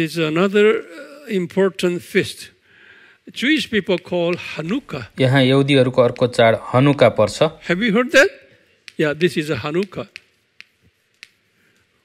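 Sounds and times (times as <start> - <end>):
chalk clicking on a blackboard: 3.3 - 8.0, 8.8 - 12.0.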